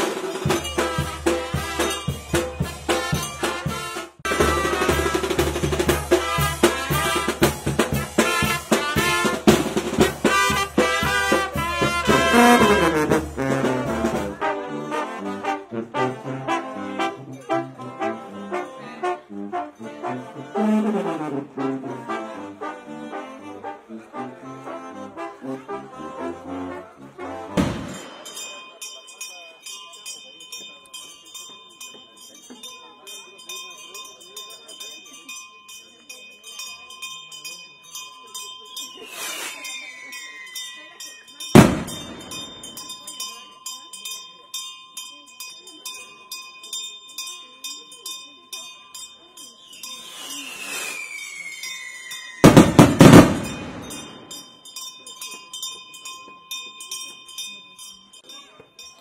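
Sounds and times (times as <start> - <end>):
high ringing with ticks: 0.2 - 3.9, 27.9 - 52.6, 53.4 - 59.0
skyrocket whistle and bang: 27.6 - 28.1, 50.6 - 53.6.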